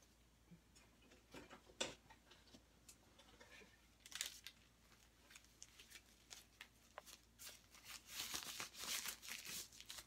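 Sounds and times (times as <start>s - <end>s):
plastic gloves crinkling: 3.9s - 10.0s.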